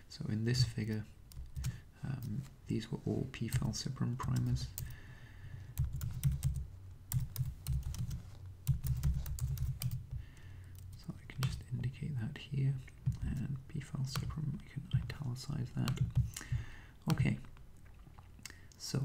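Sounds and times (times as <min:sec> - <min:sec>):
computer keyboard typing: 0:01.3 - 0:02.4, 0:05.8 - 0:10.1.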